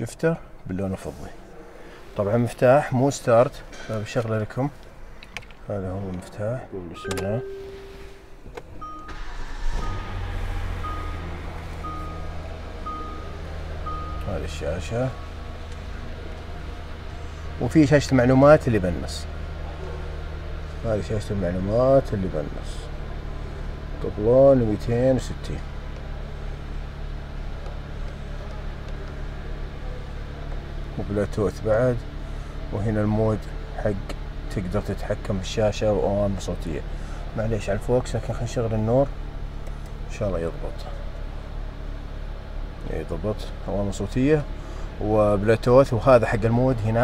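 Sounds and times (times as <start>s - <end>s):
car engine starting and idling: 0.2s - 47.0s
dashboard chime beeping: 6.9s - 10.1s, 10.8s - 14.3s.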